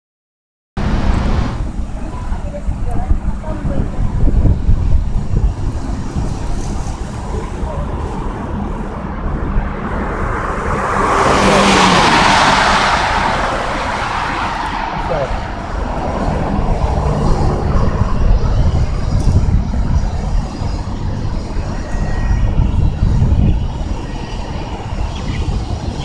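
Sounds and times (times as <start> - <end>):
car road noise: 0.8 - 26.0.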